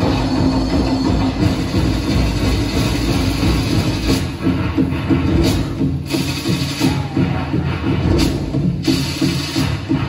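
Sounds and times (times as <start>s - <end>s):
drum and percussion music: 0.0s - 10.0s.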